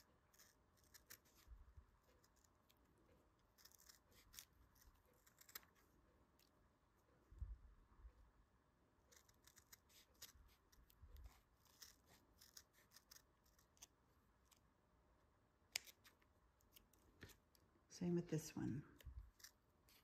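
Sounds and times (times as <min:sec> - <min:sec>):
scissors snipping felt: 0:00.3 - 0:02.8, 0:03.4 - 0:06.5, 0:09.1 - 0:14.6, 0:15.7 - 0:17.4.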